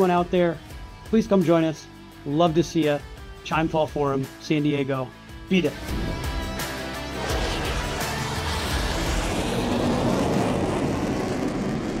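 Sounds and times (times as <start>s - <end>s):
music: 0.0s - 10.3s
noisy whooshing swell: 5.7s - 12.0s.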